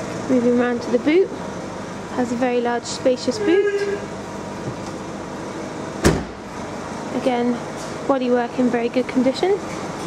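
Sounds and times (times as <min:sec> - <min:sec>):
steady background hum: 0:00.0 - 0:10.0
car tailgate shutting: 0:06.0 - 0:06.4.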